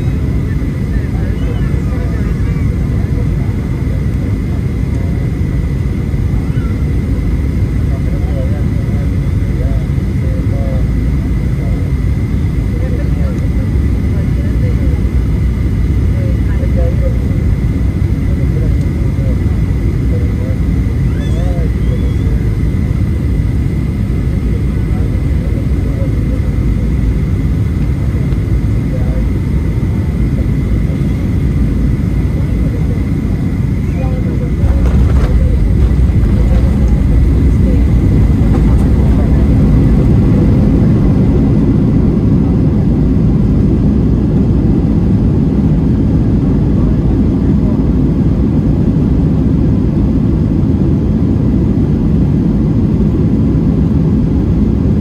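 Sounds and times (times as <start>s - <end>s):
thin steady whine: 0.0s - 52.2s
airplane cabin engine roar: 0.0s - 55.0s.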